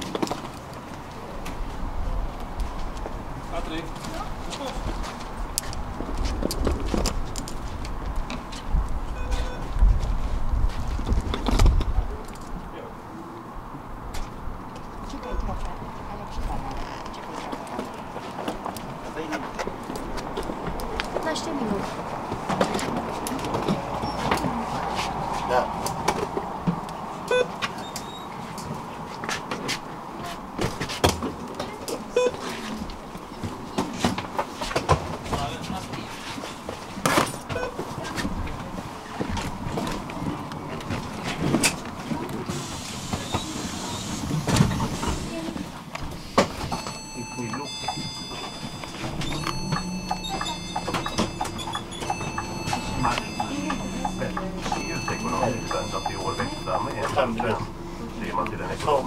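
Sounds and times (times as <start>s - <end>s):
steady tones: 46.7s - 59.0s.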